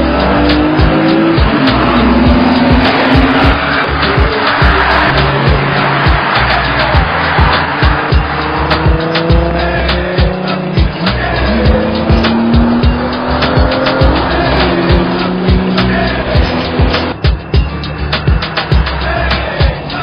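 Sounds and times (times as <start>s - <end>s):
car engine accelerating hard: 0.0s - 20.0s
hip-hop music with steady beat: 0.0s - 20.0s.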